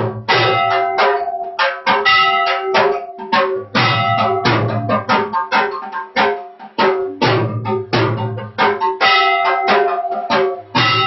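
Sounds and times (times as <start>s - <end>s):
temple bells ringing: 0.3s - 5.1s, 9.0s - 11.0s.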